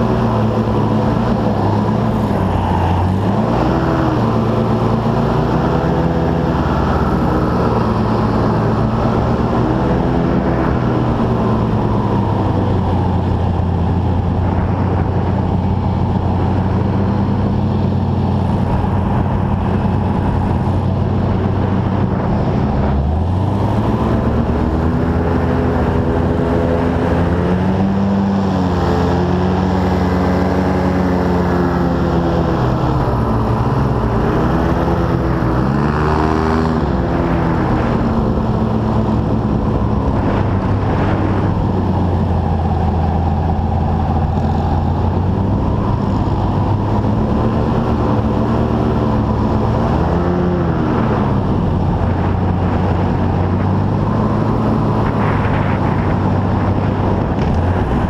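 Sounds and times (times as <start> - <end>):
airboat engine and propeller: 0.0 - 58.0.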